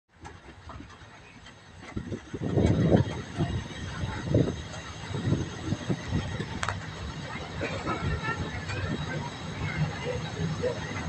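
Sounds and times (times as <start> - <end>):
electric train rumbling: 0.1 - 11.0.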